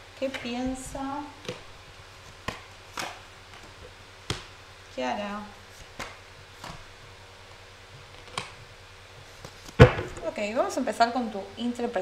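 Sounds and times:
card slapped on table: 9.7 - 10.2.

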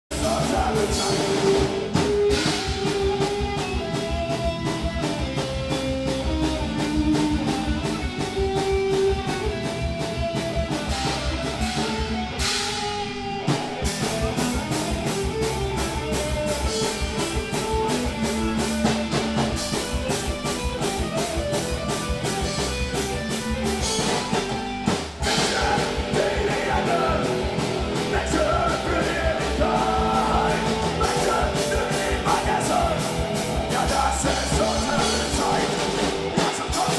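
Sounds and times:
punk rock band playing live: 0.1 - 36.9.

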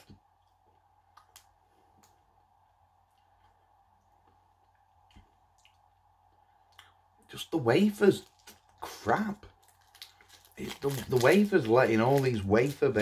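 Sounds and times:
low steady hum: 0.0 - 13.0
person chewing crispy food: 3.0 - 6.1, 8.2 - 13.0.

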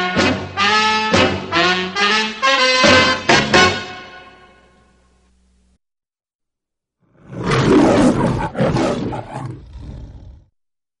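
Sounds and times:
lion roaring: 7.0 - 10.5.

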